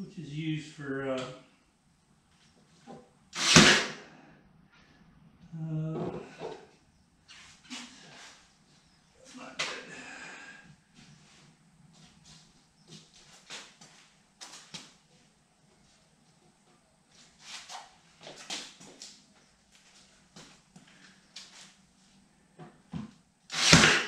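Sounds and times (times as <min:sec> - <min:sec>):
nail gun shot: 0:03.4 - 0:04.0, 0:23.5 - 0:24.0.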